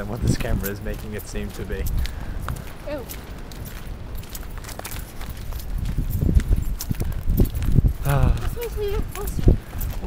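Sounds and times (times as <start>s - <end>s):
footsteps on sandy dirt path: 0.0s - 10.0s
wind rumble on microphone: 0.0s - 10.0s.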